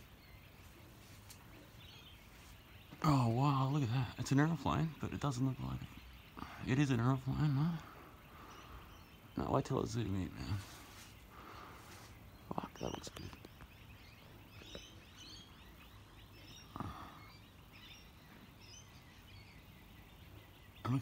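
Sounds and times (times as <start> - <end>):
faint bird chirps: 0.0 - 21.0.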